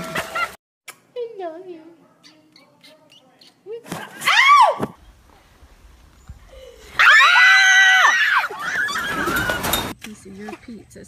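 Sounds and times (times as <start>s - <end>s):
high-pitched scream: 7.0s - 9.6s.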